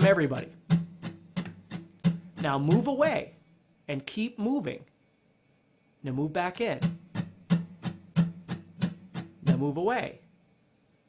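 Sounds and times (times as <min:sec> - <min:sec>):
acoustic guitar strummed: 0:00.0 - 0:03.3, 0:06.8 - 0:09.8.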